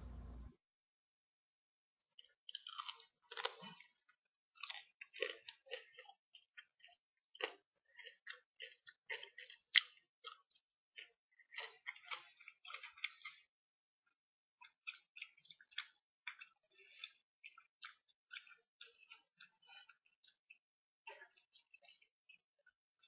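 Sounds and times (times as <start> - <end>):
person chewing crunchy food: 2.1 - 23.0.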